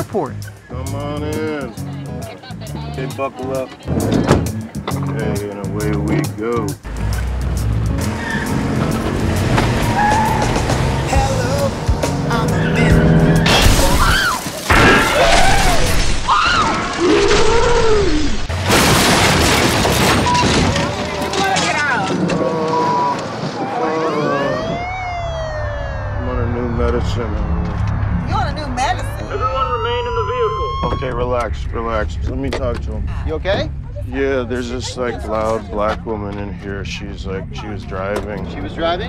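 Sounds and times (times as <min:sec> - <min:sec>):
background music: 0:00.0 - 0:14.2
passengers yelling and shouting: 0:20.2 - 0:31.7
siren wailing: 0:22.4 - 0:31.4.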